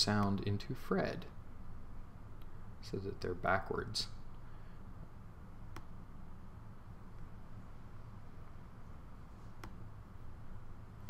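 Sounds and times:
faint low room hum: 0:00.0 - 0:11.0
computer mouse clicks: 0:05.7 - 0:06.0, 0:09.6 - 0:09.8.

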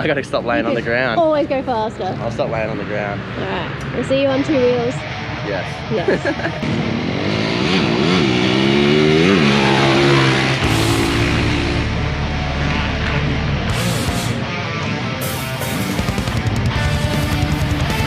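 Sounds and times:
dirt bike engines revving: 0:00.0 - 0:18.0
rock music: 0:00.0 - 0:18.0.

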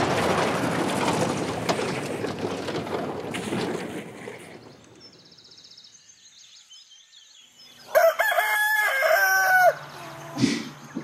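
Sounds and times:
small birds chirping: 0:04.3 - 0:08.1
rooster crowing: 0:07.9 - 0:10.2.

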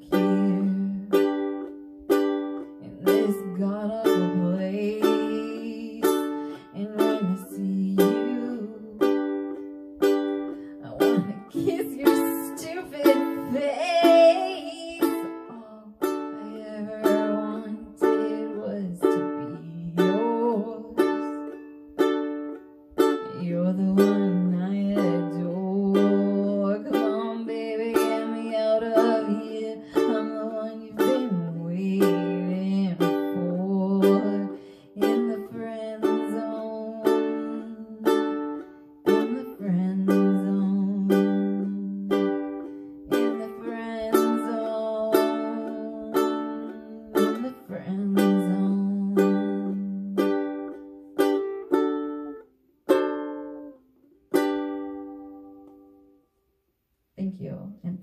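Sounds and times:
ukulele strumming chords: 0:00.0 - 0:56.2.

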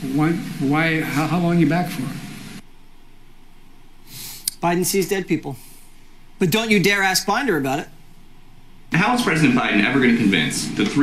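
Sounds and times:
man speaking: 0:00.0 - 0:02.4, 0:04.4 - 0:05.8, 0:06.4 - 0:08.0, 0:08.9 - 0:11.0
faint background hiss: 0:00.0 - 0:11.0.

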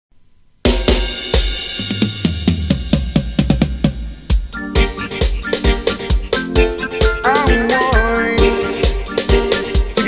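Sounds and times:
drum kit strokes: 0:00.7 - 0:10.0.

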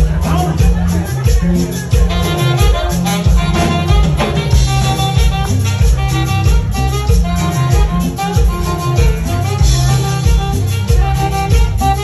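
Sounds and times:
latin dance band playing: 0:00.0 - 0:12.0.

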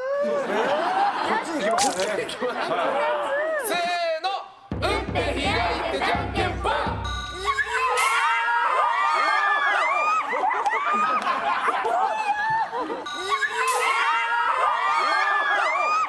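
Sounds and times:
laughter: 0:00.2 - 0:03.4, 0:10.1 - 0:13.1
women shrieking and squealing: 0:02.8 - 0:03.7, 0:07.4 - 0:16.0.

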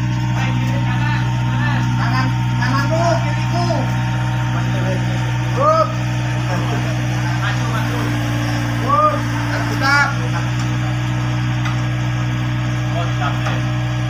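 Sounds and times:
diesel engine running: 0:00.0 - 0:14.0.

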